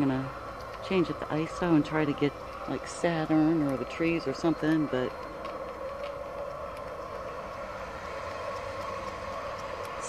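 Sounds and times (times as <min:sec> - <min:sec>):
steady background drone: 0:00.0 - 0:10.0.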